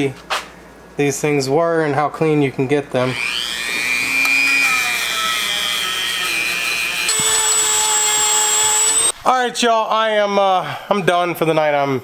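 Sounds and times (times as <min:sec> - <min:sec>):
rotary tool wire brush whining: 0:03.0 - 0:09.2.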